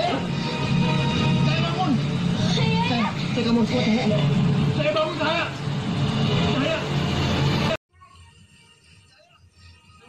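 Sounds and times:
television voices: 0:00.0 - 0:10.0.

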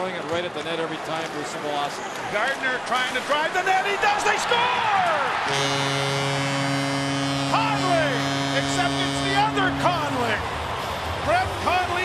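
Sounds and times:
arena goal horn: 0:05.3 - 0:10.4
commentator speaking: 0:07.5 - 0:10.4.

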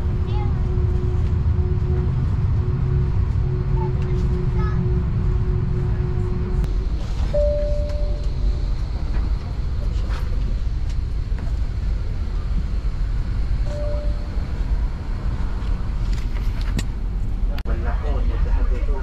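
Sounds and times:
steady tone: 0:00.0 - 0:09.8, 0:13.0 - 0:15.5
aircraft cabin rumble: 0:00.0 - 0:19.0
faint passenger voices: 0:03.4 - 0:05.0, 0:08.9 - 0:12.7, 0:17.5 - 0:19.0.

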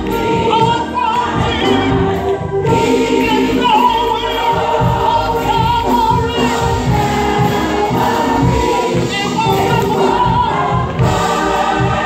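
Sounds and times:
gospel choir singing with band: 0:00.0 - 0:12.0.

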